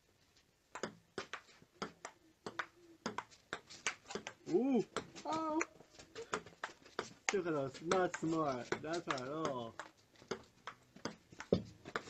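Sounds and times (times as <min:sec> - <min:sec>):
ping-pong ball clicking: 0:00.7 - 0:04.4, 0:06.3 - 0:12.0.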